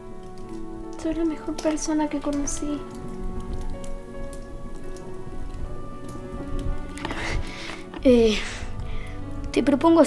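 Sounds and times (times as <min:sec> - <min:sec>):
fire crackling and popping: 0:00.0 - 0:10.0
soft background music: 0:00.0 - 0:10.0.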